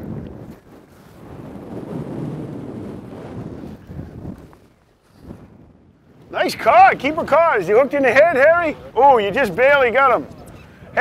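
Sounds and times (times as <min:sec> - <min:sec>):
rough sea: 0:00.0 - 0:11.0
wind on microphone: 0:00.0 - 0:11.0.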